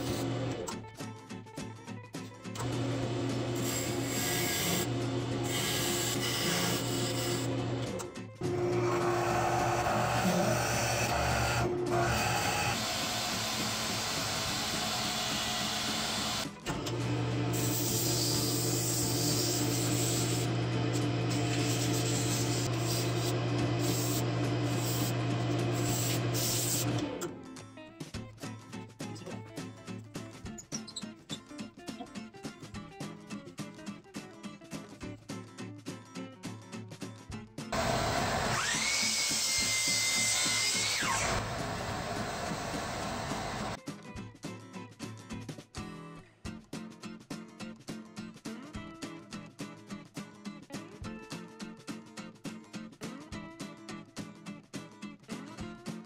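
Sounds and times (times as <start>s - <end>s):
lathe motor hum: 2.6s - 27.2s, 37.8s - 43.8s
miter saw whining: 2.6s - 27.3s, 37.8s - 43.8s.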